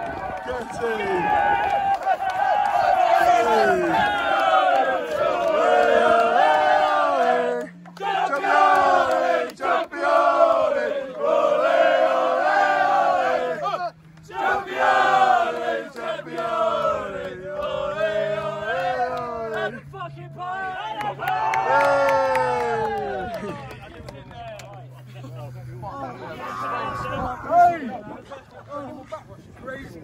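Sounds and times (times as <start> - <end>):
group chanting: 2.1 - 19.8.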